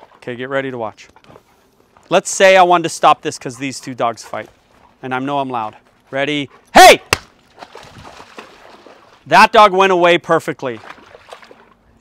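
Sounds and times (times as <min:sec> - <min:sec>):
splashing in water: 0:07.0 - 0:09.3, 0:10.6 - 0:11.9
sharp crack: 0:07.1 - 0:07.4.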